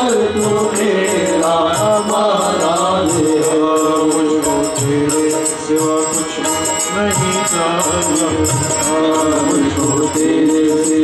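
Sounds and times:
harmonium: 0.0 - 11.0
light percussion beat: 0.0 - 11.0
man singing: 0.0 - 11.0.

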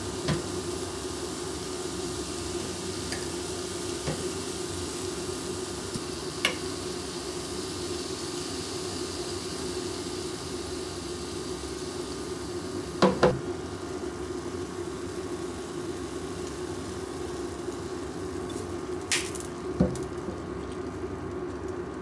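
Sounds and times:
low kitchen hum: 0.0 - 22.0.

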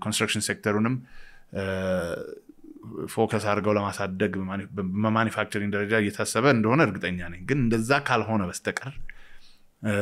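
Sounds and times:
man saying uhh: 1.6 - 3.1.

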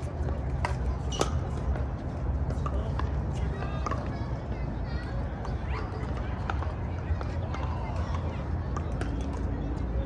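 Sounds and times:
faint talk: 0.0 - 10.0.

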